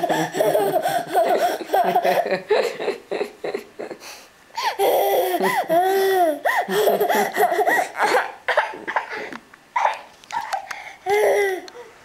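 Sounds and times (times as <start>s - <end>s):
toddler breathy laughter: 0.0s - 3.0s, 3.9s - 8.3s, 9.8s - 11.7s.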